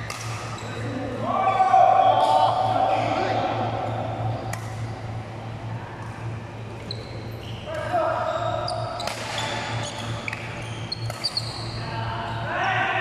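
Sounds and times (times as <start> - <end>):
racket hitting shuttlecock: 0.0 - 0.5, 4.4 - 4.9, 9.0 - 9.6, 10.3 - 11.4
steady low hum: 0.0 - 13.0
shoe squeaks on court floor: 6.8 - 11.8.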